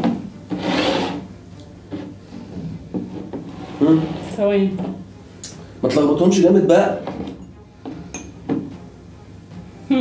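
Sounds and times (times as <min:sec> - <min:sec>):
glasses scraping across a table: 0:00.5 - 0:01.3, 0:01.9 - 0:05.0, 0:06.9 - 0:07.6.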